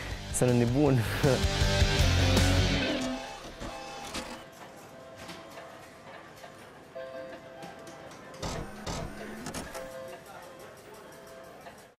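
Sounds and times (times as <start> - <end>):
background music: 0.0 - 11.9.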